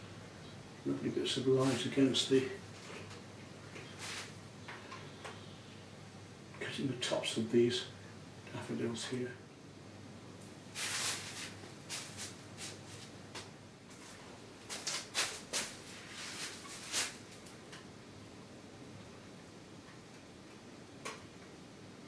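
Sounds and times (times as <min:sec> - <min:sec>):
paintbrush strokes on canvas: 0:04.0 - 0:04.4, 0:10.7 - 0:13.1.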